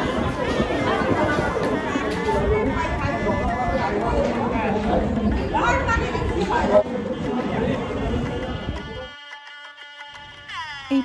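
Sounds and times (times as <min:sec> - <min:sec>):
overlapping chatter: 0:00.0 - 0:11.0.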